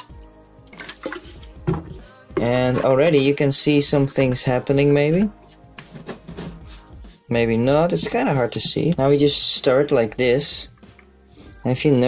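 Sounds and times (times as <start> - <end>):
liquid pouring into metal can: 0.0 - 1.9.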